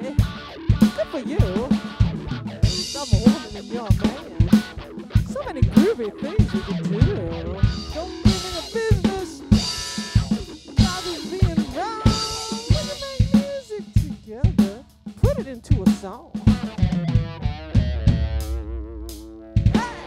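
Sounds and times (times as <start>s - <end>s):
electric guitar lead: 0.0s - 13.4s, 16.3s - 20.0s
drum kit beat: 0.0s - 20.0s.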